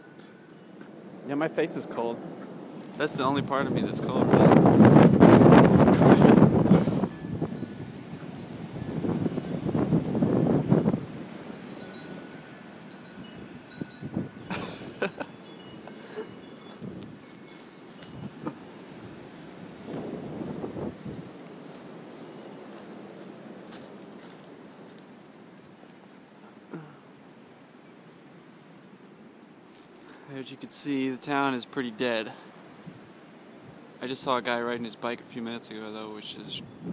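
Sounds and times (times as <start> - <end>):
faint high ringing tones: 0.0 - 2.4, 6.8 - 20.0
wind gusting over microphone: 0.9 - 24.9, 36.2 - 36.9.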